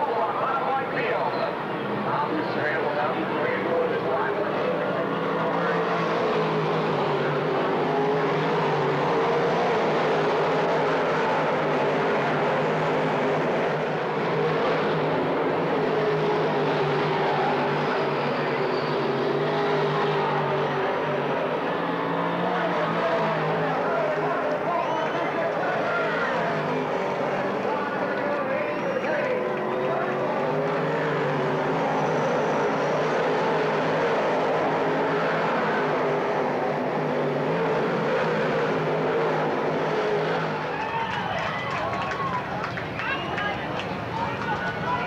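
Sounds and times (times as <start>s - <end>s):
race car engines roaring: 0.0s - 45.0s.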